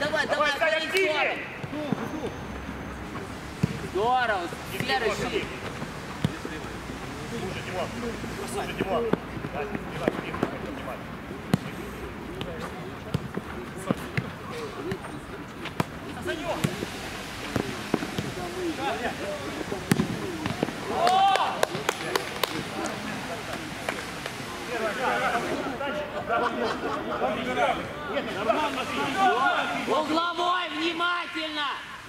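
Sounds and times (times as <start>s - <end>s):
players calling and shouting: 0.0s - 32.0s
ball being kicked: 19.8s - 20.8s.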